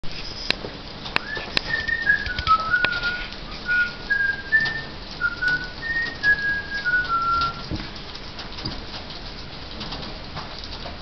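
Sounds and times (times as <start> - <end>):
person whistling a tune: 1.2 - 7.7.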